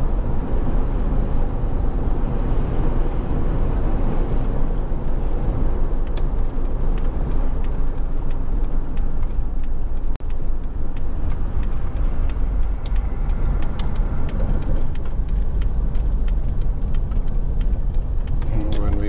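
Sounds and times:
car engine and tyre rumble: 0.0s - 19.0s
faint light ticks: 6.0s - 19.0s.

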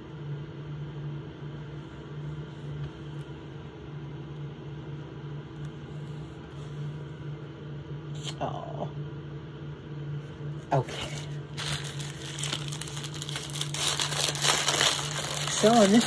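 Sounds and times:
household machine humming and hissing: 9.8s - 16.0s.

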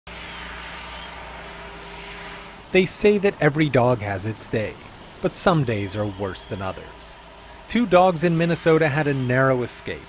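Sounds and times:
low engine hum: 0.1s - 10.0s.

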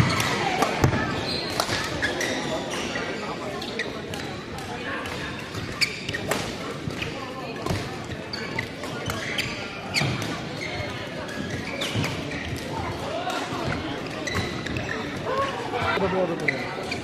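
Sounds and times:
shoes squeaking on court floor: 0.0s - 17.0s.

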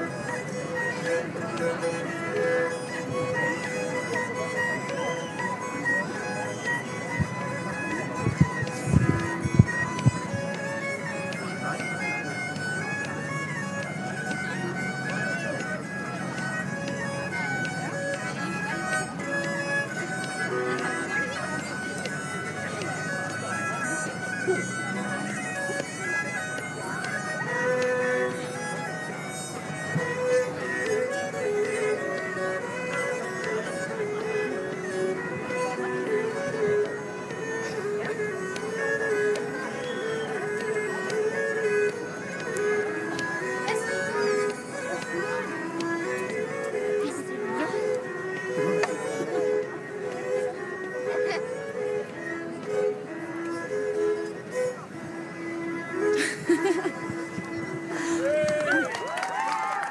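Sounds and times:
fiddle ensemble playing folk dance: 0.0s - 59.9s.

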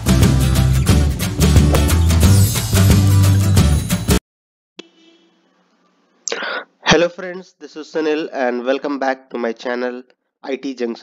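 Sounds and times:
man's sharp breath: 6.3s - 6.8s
man speaking: 6.3s - 11.0s.

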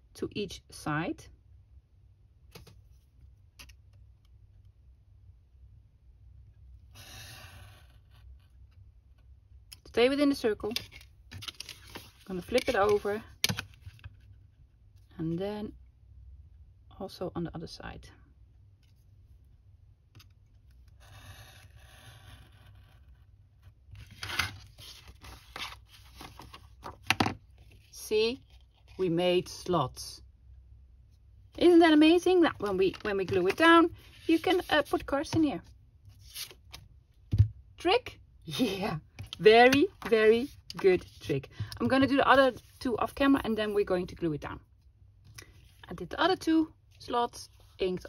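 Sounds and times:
paper rustling: 10.8s - 14.2s, 24.0s - 29.0s.

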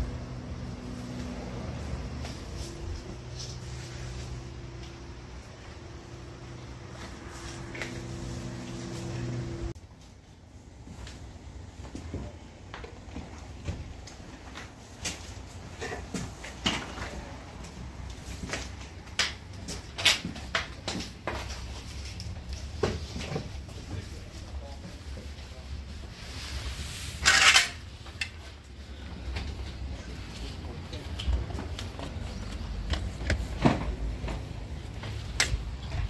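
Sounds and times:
tools clattering: 27.2s - 28.4s.

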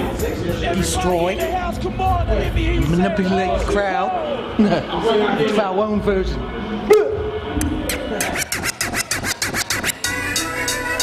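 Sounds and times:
vinyl record scratching: 7.6s - 10.2s.

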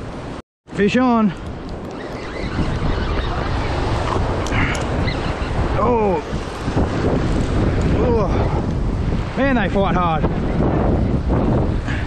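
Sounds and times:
wind buffeting microphone: 0.0s - 12.0s
surf washing against rocks: 0.1s - 12.0s.

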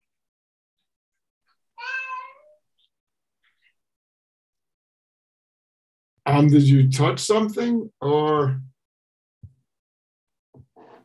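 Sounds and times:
faint small sounds: 0.8s - 4.0s
cat meowing: 1.8s - 2.6s.

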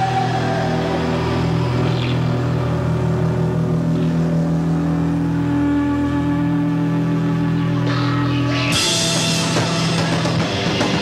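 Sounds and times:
distorted guitar drone: 0.0s - 11.0s.

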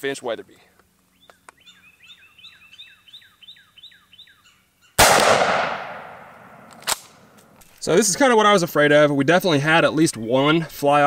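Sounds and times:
shotgun shot with echo: 5.0s - 7.2s.

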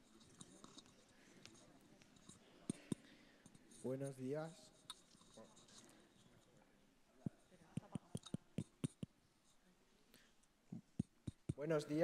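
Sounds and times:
person speaking: 0.1s - 6.5s, 7.2s - 9.1s, 11.3s - 12.0s.

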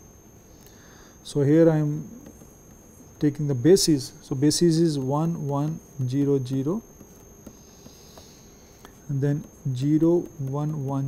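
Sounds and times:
high-pitched electrical whine: 0.0s - 11.0s
stylus tapping on tablet screen: 2.2s - 2.9s, 4.4s - 11.0s.

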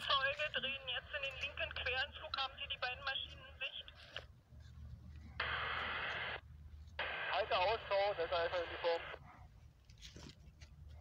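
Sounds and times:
radio static hiss: 5.4s - 9.2s
radio voice: 7.0s - 9.2s.

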